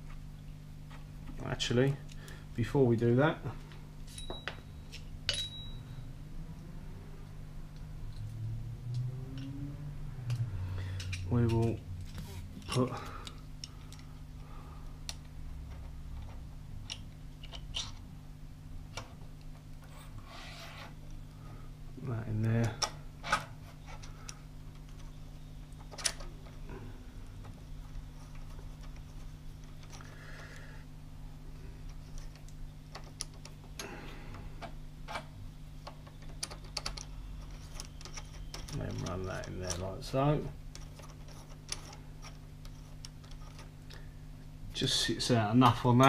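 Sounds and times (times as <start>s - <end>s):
low workshop hum: 0.0s - 46.0s
small metal hardware clinking: 4.1s - 5.8s
sharp clicks of metal parts: 10.2s - 14.1s, 34.6s - 40.0s.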